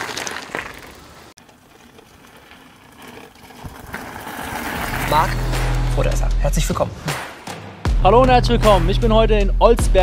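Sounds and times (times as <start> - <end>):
bike tyres crunching on gravel: 0.0 - 6.1.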